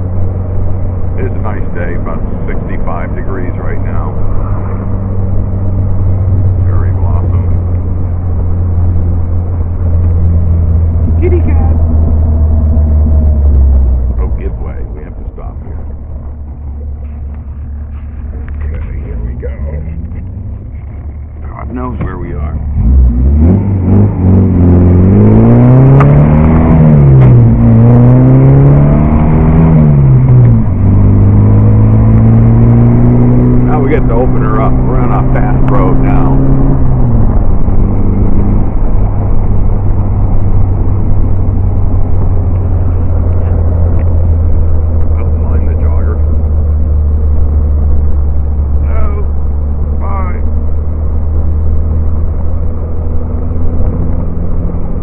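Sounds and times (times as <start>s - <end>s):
car engine running: 0.0s - 55.0s.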